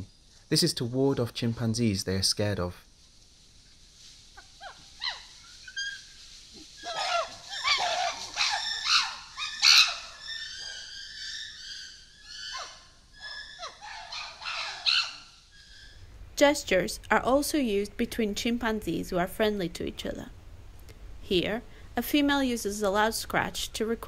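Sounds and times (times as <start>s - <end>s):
faint rustles: 0.0s - 16.4s
chimpanzee high-pitched cries: 4.4s - 16.0s.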